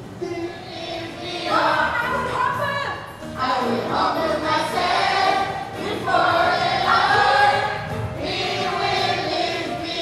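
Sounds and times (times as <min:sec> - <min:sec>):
children's choir singing: 0:00.2 - 0:02.4, 0:03.4 - 0:10.0.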